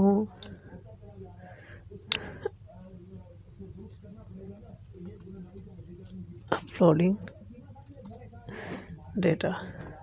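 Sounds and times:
low electrical hum: 0.0 - 10.0
computer mouse clicking: 3.8 - 8.3.

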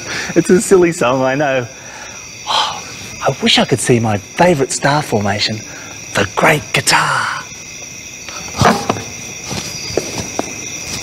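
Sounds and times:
cricket chirring: 0.0 - 11.0.

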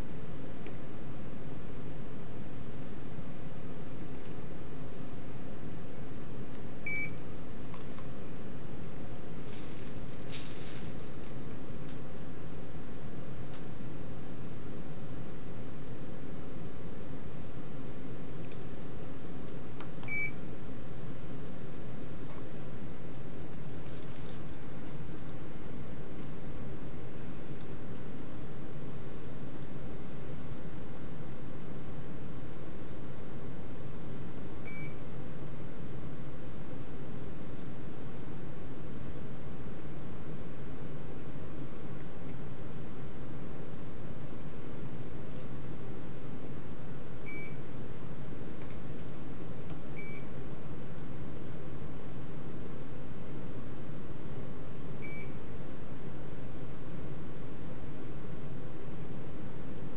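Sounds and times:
steady background noise: 0.0 - 34.6
low room noise: 0.0 - 59.9
rustling: 9.4 - 12.7, 23.5 - 25.4.

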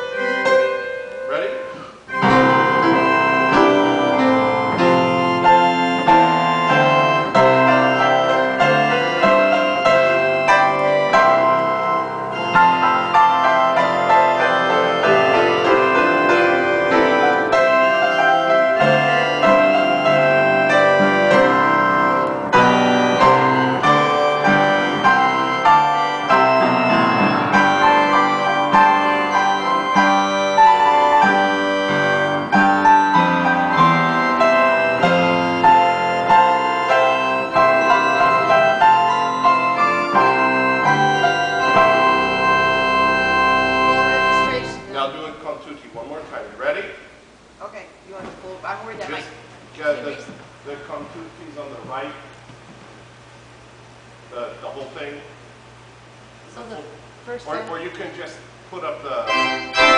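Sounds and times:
piano: 0.0 - 47.0, 56.5 - 59.9
pipe organ: 0.0 - 47.6, 48.6 - 59.9.

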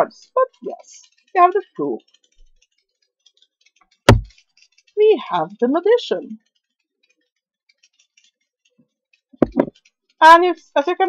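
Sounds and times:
sharp thump: 4.1 - 4.4.

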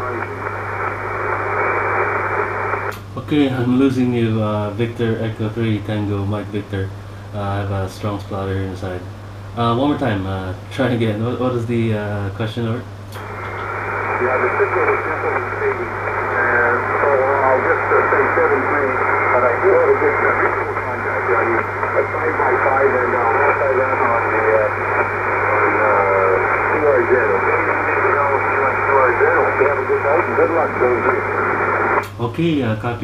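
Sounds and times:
voice over radio speaker: 0.0 - 2.8, 13.2 - 32.1
radio hiss and splatter: 0.0 - 3.0, 13.2 - 32.1
steady low hum: 0.0 - 33.0.

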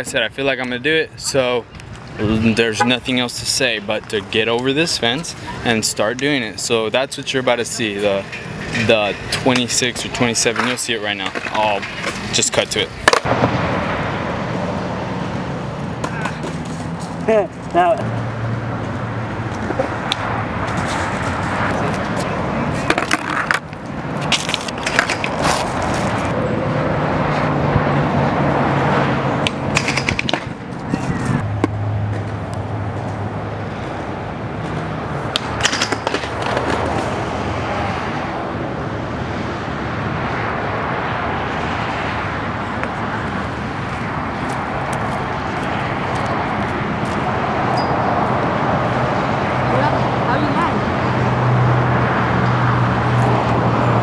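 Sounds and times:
skateboard wheels rolling on concrete: 0.6 - 54.0
skateboard clacks and knocks: 22.8 - 23.7, 35.3 - 37.1.

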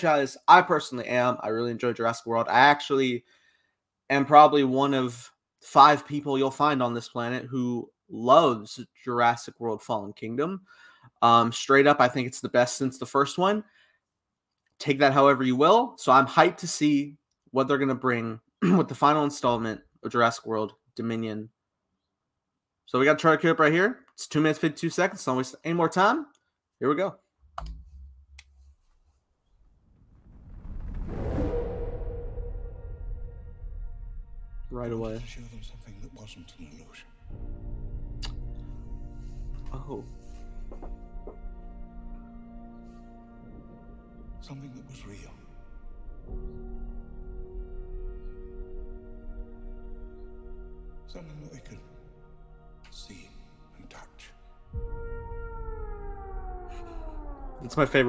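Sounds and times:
low bumps: 27.4 - 51.0, 54.5 - 58.0
low rumble soundtrack: 27.5 - 58.0
dinosaur bellow: 54.8 - 58.0.

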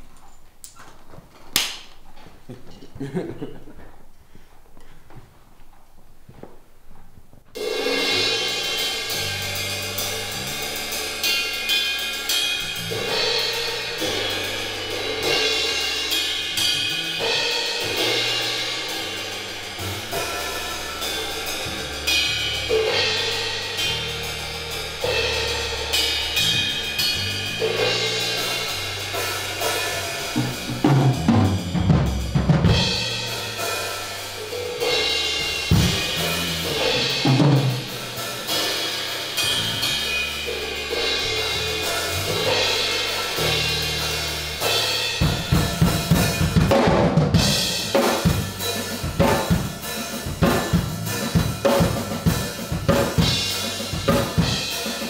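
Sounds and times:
heavy low drum hits: 7.6 - 54.7
cymbals and hi-hat: 7.6 - 55.0
low notes: 7.6 - 55.0.

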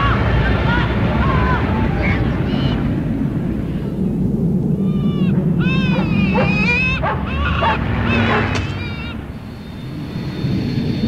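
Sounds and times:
steady low rush: 0.0 - 11.0
high animal-like calls: 3.6 - 11.0.

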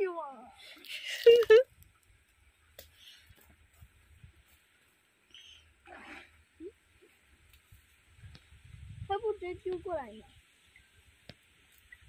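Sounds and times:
soft rustle: 2.2 - 6.3, 7.0 - 8.6
faint wind rumble on microphone: 3.7 - 4.6, 7.1 - 12.0.

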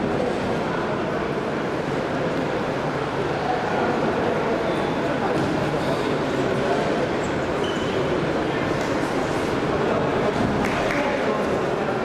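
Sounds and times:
crowd voices in a hall: 0.0 - 12.0.

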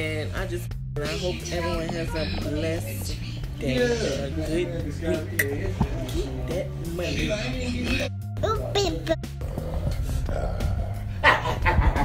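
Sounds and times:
dog barking: 11.2 - 11.8.

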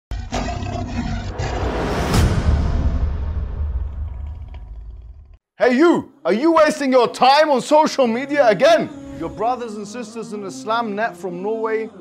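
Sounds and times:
lion roaring: 0.1 - 2.3
cinematic music: 0.3 - 4.7
deep rumble: 1.0 - 5.4.

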